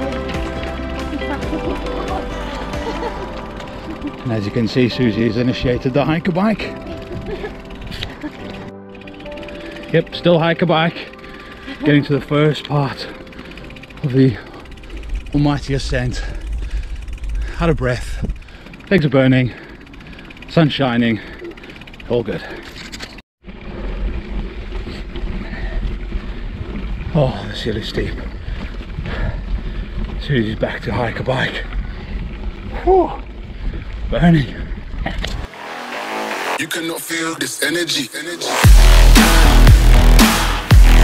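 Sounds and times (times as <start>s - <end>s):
music with held tones: 0.0s - 14.4s, 38.5s - 41.0s
wind buffeting microphone: 15.0s - 18.7s.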